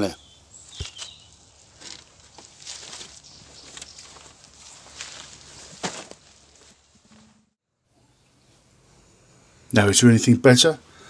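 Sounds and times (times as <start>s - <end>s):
rustling of tackle: 0.8s - 7.4s.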